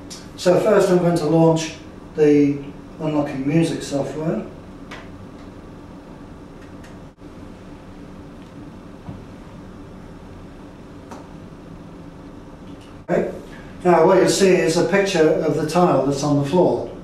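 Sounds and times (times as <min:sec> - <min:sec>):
computer hum: 0:00.0 - 0:17.0.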